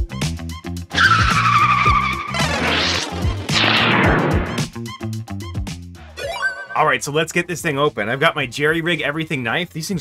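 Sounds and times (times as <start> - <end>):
tyres screeching: 0.9 - 4.5
rising whoosh: 2.4 - 4.7.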